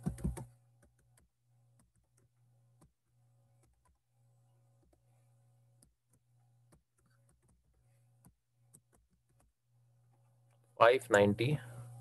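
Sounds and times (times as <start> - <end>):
keyboard typing clicks: 0.0 - 2.9.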